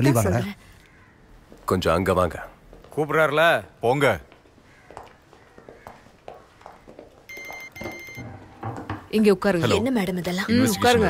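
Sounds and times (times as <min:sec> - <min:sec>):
telephone double ring: 0:07.3 - 0:08.5.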